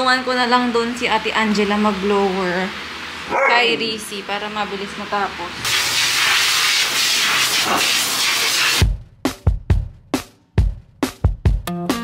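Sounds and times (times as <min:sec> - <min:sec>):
pet dryer blowing air: 0:05.6 - 0:08.8
background music with drum hits: 0:08.8 - 0:12.0.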